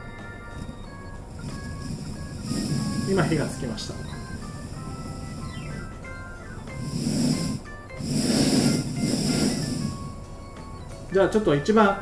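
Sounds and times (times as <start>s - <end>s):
gas burner hissing: 0.0s - 11.5s
background music: 0.0s - 12.0s.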